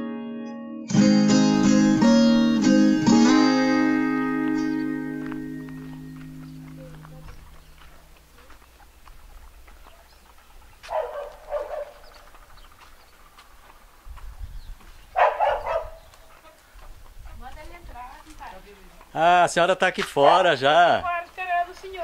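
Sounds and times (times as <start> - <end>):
acoustic guitar chord: 0.0 - 7.6
dog barking: 6.6 - 8.2, 10.8 - 12.1, 15.1 - 16.6.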